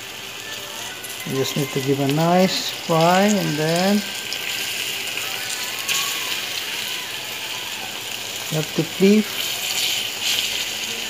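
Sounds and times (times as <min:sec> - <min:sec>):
tofu sizzling in hot oil: 0:00.0 - 0:11.0.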